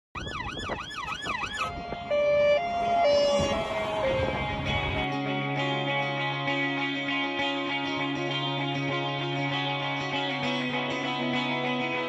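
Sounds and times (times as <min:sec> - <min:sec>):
siren yelp: 0:00.2 - 0:05.7.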